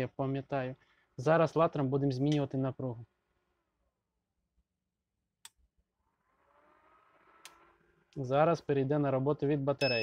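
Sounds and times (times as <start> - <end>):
faint whine rising in pitch: 6.0 - 8.3.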